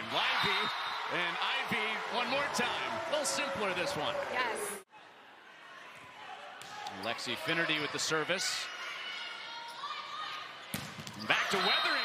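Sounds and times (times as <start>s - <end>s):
gym crowd noise: 0.0s - 12.0s.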